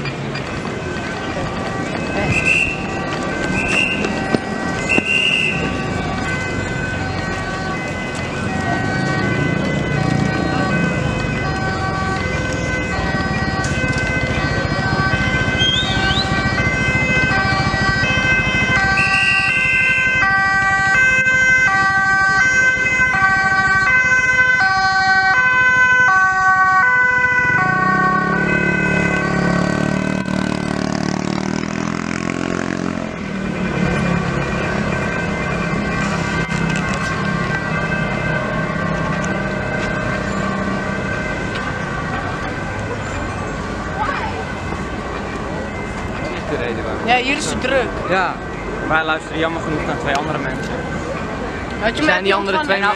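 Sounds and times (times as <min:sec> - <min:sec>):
street noise with voices: 0:00.0 - 0:26.8, 0:27.9 - 0:52.9
two-tone ambulance siren: 0:00.0 - 0:52.9.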